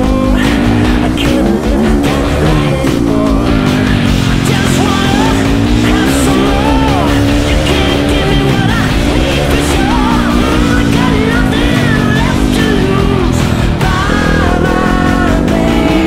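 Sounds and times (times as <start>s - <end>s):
background music: 0.0s - 16.0s
dirt bike engine revving: 0.0s - 16.0s.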